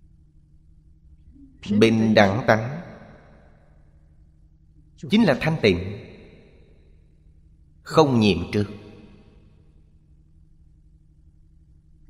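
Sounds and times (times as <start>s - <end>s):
faint steady low hum: 0.0s - 12.0s
man lecturing: 1.6s - 2.9s, 5.0s - 6.0s, 7.9s - 8.9s.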